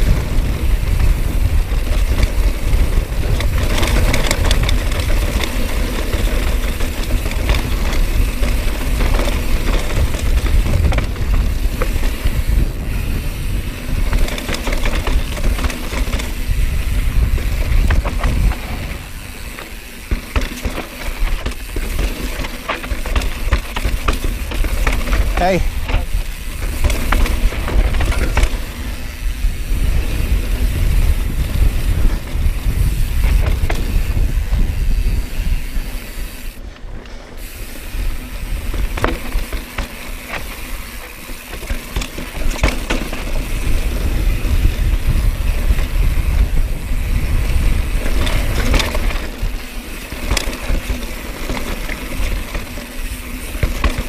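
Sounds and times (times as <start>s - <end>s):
tyres rumbling over dirt and stones: 0.0s - 34.8s, 38.2s - 54.0s
bike rattling and clicking: 0.0s - 54.0s
wind buffeting microphone: 0.0s - 54.0s.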